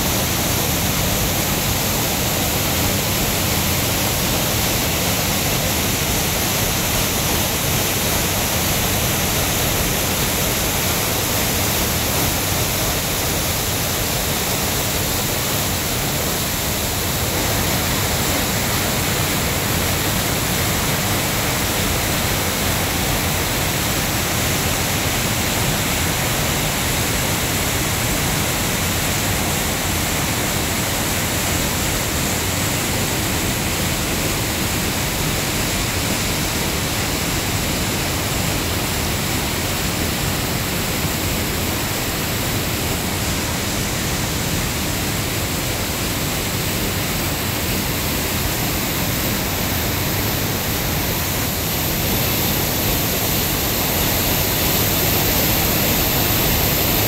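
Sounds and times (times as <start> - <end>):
water rushing over boulders: 0.0 - 57.0.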